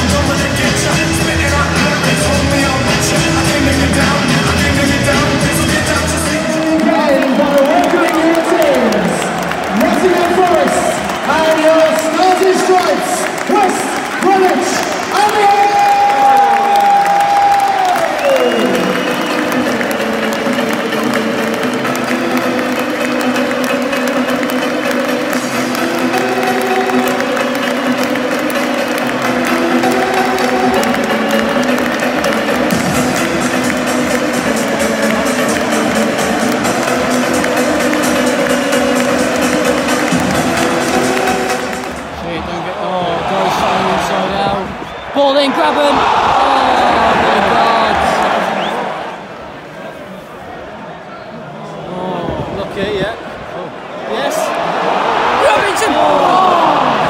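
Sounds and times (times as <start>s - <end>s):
music over public address: 0.0s - 53.0s
stadium crowd: 0.0s - 57.0s.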